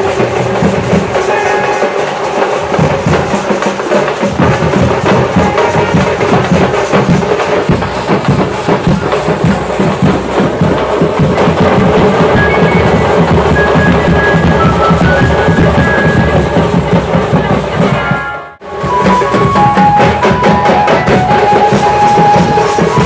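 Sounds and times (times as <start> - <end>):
fast continuous drumming: 0.0 - 23.0.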